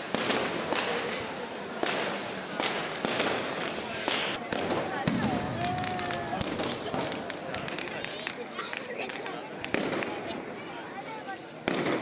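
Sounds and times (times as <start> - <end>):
fireworks cracking: 0.0 - 10.6, 11.2 - 12.0
crowd chatter: 0.0 - 12.0.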